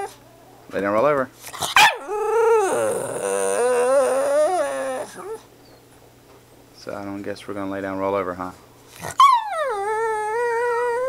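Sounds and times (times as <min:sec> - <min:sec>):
dog whining: 0:00.0 - 0:00.7, 0:01.5 - 0:05.8, 0:08.9 - 0:11.0.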